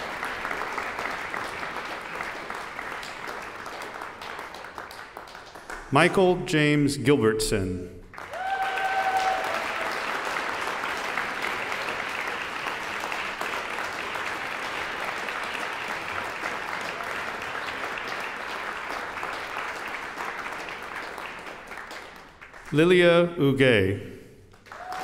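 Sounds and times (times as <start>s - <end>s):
audience applauding: 0.0s - 6.4s, 8.1s - 23.2s, 24.5s - 25.0s.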